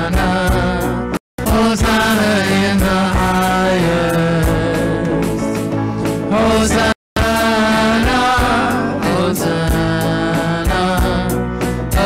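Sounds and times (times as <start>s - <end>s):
worship band playing: 0.0s - 12.0s
voices singing sustained notes: 6.3s - 11.4s.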